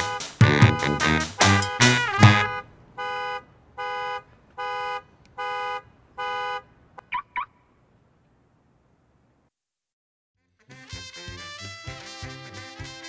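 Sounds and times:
music: 0.0 - 2.6, 10.4 - 13.0
car alarm rising chirps: 0.0 - 4.8, 7.1 - 7.6
car alarm horn beeps: 0.0 - 7.5.

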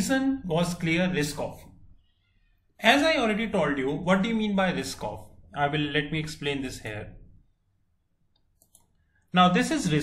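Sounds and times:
mouse clicks: 8.3 - 9.0.

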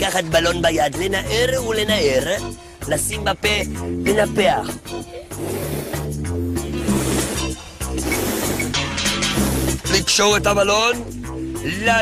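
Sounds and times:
balloon being blown up: 5.3 - 9.9.

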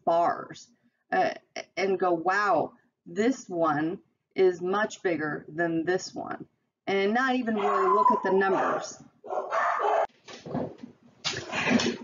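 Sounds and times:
dog barking: 7.6 - 10.1.

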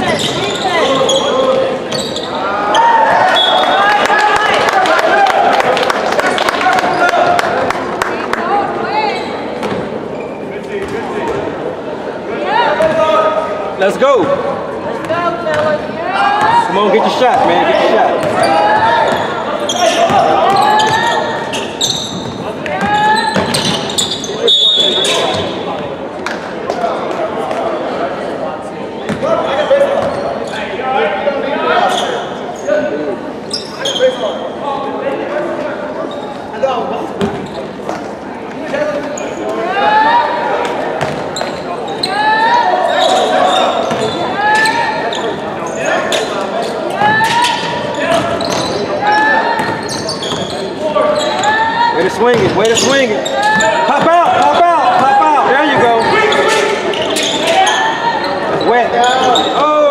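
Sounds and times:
voices calling out: 15.0 - 25.8, 38.8 - 59.9.

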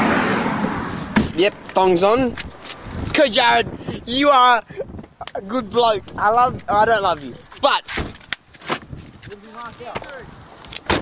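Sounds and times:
men talking indistinctly: 1.2 - 2.4, 3.1 - 8.0, 9.3 - 10.3.

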